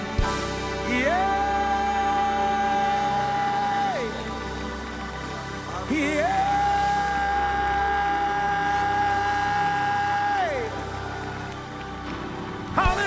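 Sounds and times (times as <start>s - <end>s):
sustained keyboard chords: 0.0s - 13.0s.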